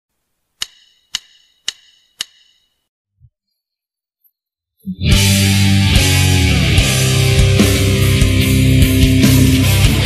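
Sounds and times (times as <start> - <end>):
drumstick count-in clicks: 0.6 - 2.8.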